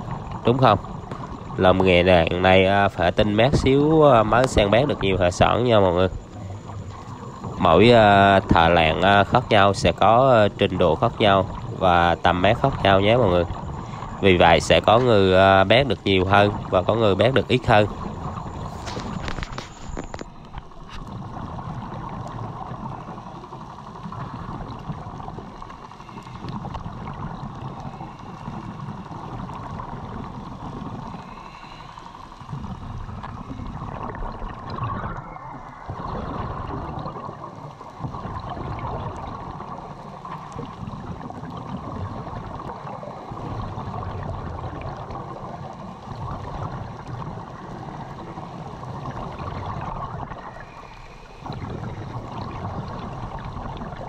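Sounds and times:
underwater gurgling: 0.0s - 54.0s.

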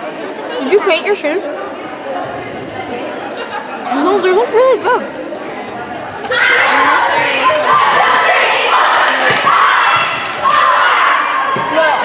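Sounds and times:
chatter of many voices: 0.0s - 12.0s.

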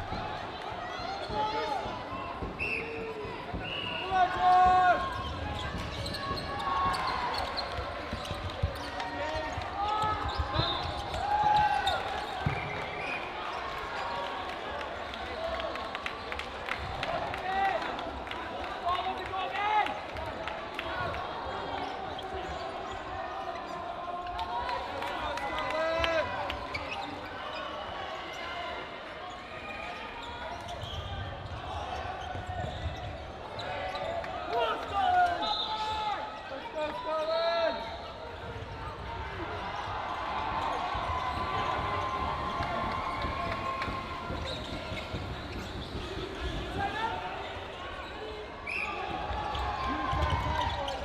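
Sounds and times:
sneaker squeaks: 0.9s - 13.6s, 21.8s - 24.0s, 26.0s - 34.3s, 40.6s - 51.0s.

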